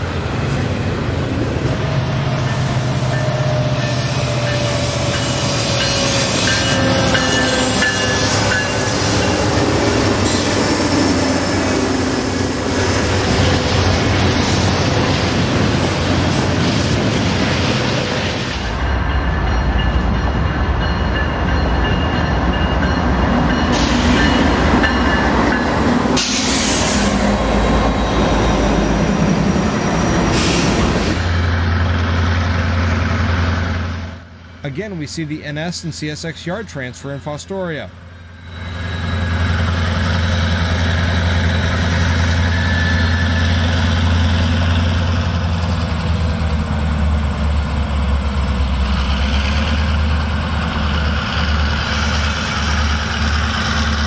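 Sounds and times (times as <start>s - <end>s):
locomotive engine rumble: 0.0s - 54.0s.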